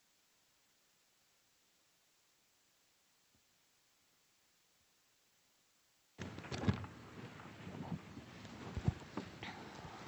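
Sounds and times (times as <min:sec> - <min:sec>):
low background hiss: 0:00.0 - 0:10.0
knocks and rustles of people: 0:06.2 - 0:10.0.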